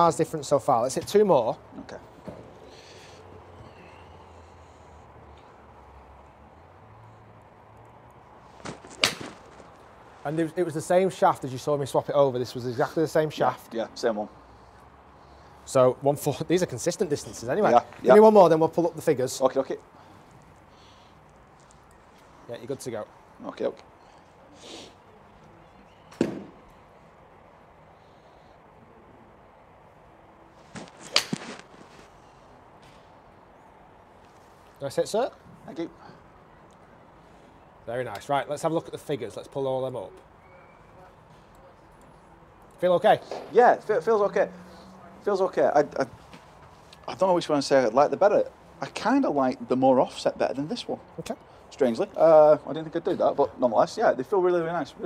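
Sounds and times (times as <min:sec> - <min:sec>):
golf club striking ball crack: 0:08.6 - 0:09.8, 0:30.7 - 0:31.9.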